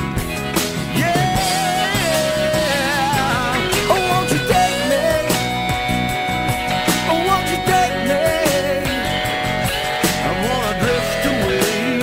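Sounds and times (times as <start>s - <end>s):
rock band music: 0.0s - 12.0s
sliding lead guitar line: 0.0s - 12.0s.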